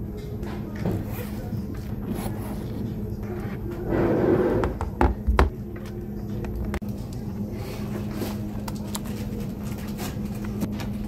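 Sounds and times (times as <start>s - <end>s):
bag zipper opening: 1.9s - 4.7s.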